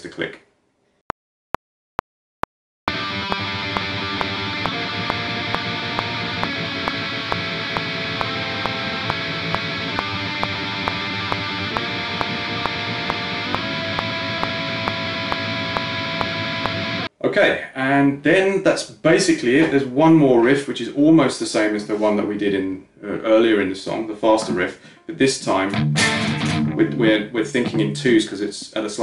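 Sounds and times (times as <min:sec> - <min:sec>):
distorted electric guitar riff: 0:02.9 - 0:17.1, 0:25.7 - 0:27.0
metronome click: 0:03.2 - 0:16.8.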